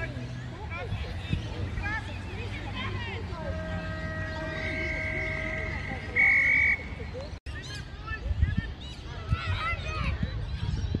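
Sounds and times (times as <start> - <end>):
whistle blast: 3.5 - 7.0.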